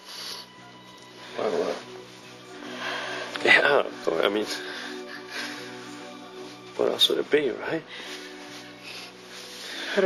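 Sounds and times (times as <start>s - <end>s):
person breathing: 0.0s - 1.9s, 2.5s - 3.4s, 4.5s - 6.5s, 7.9s - 10.0s
dramatic background music: 0.0s - 10.0s.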